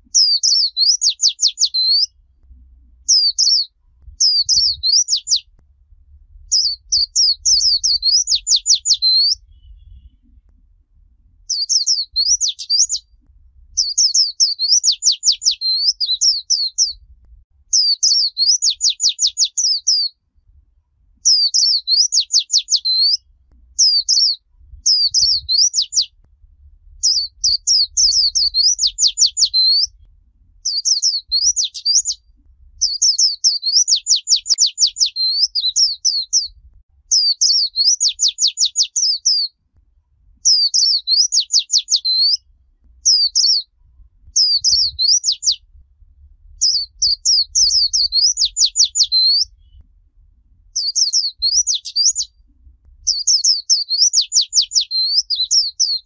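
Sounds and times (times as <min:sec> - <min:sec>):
bird warbling and trilling: 0:00.1 - 0:02.2, 0:03.0 - 0:05.5, 0:06.5 - 0:10.3, 0:11.5 - 0:13.1, 0:13.8 - 0:17.0, 0:17.7 - 0:20.2, 0:21.2 - 0:23.2, 0:23.8 - 0:26.2, 0:27.0 - 0:30.0, 0:30.6 - 0:32.2, 0:32.8 - 0:39.5, 0:40.4 - 0:42.4, 0:43.0 - 0:43.7, 0:44.4 - 0:45.6, 0:46.6 - 0:49.8, 0:50.8 - 0:52.4, 0:53.0 - 0:56.0.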